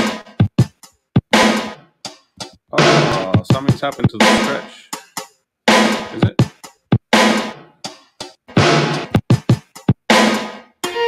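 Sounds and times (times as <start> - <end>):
sampled drum loop: 0.0 - 11.0.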